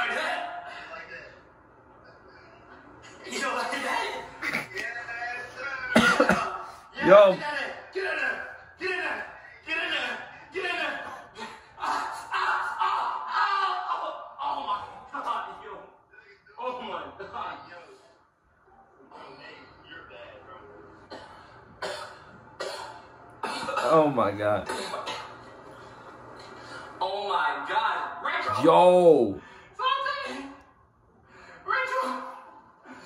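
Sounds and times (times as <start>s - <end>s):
person coughing: 6.0s - 6.7s, 21.1s - 25.4s.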